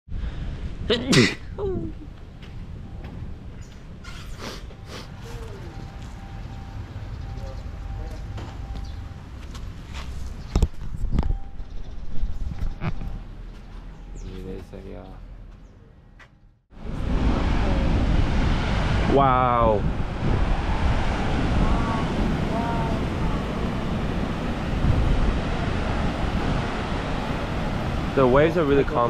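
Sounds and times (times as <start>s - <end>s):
person laughing: 12.8s - 13.2s
steady low rumble: 16.7s - 29.0s.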